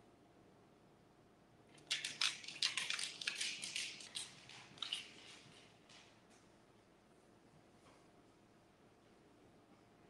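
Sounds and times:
irregular crackling and crinkling: 1.7 - 6.5.

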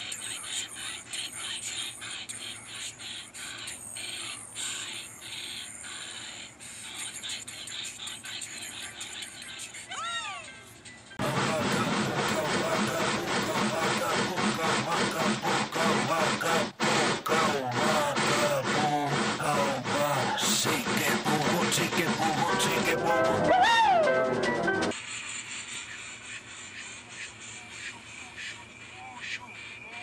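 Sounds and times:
cartoon steam locomotive chuffing: 0.2 - 9.0, 11.2 - 30.0
voice chanting: 11.2 - 23.5
film score music: 11.2 - 24.9.

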